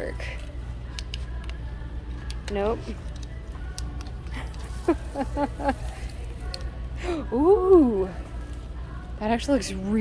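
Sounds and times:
faint background music: 0.0s - 10.0s
woman laughing: 4.3s - 6.2s.

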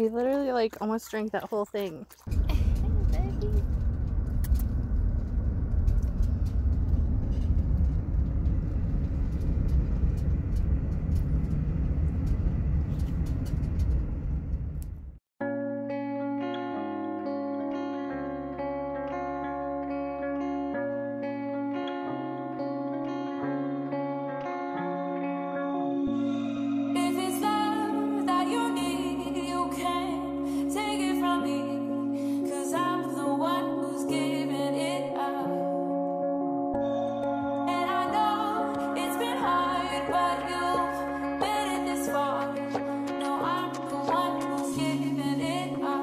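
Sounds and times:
van engine and road noise: 2.3s - 15.2s
background music with guitar: 15.4s - 46.0s.

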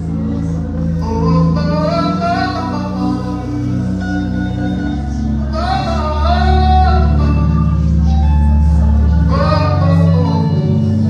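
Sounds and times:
band sustained low notes: 0.0s - 11.0s
man singing into microphone: 0.0s - 11.0s.

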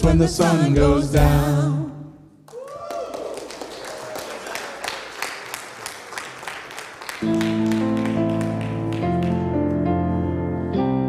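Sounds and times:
people clapping: 2.4s - 9.7s
keyboard sustained chords: 7.2s - 11.0s.

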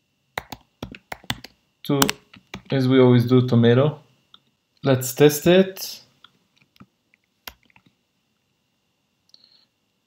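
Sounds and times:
person speaking: 1.8s - 4.0s, 4.8s - 6.2s.

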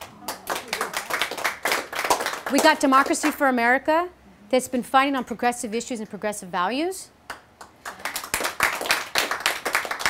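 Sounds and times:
audience clapping: 0.0s - 3.4s, 7.3s - 10.0s.

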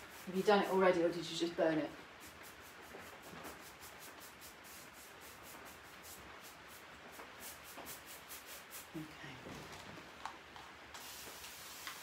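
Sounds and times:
paintbrush swishing on wood: 0.0s - 9.2s, 10.9s - 12.0s.

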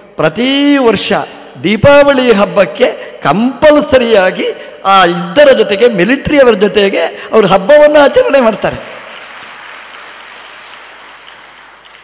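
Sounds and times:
audience applauding: 8.9s - 12.0s.

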